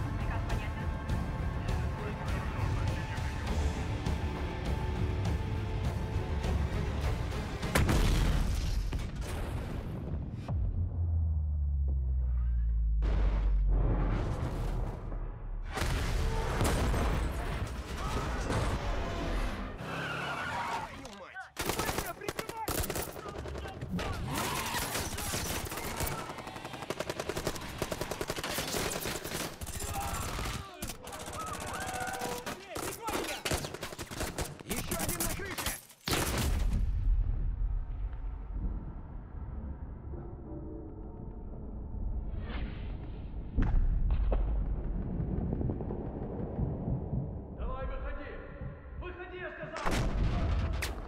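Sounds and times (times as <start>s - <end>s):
rapid automatic gunfire: 21.6s - 35.5s
explosion rumble: 43.5s - 47.6s.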